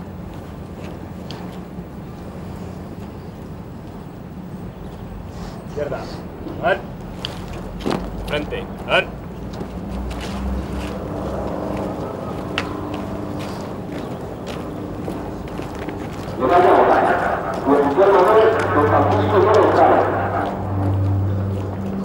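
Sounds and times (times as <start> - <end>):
steady low hum: 0.0 - 22.0
indistinct voices: 10.4 - 22.0.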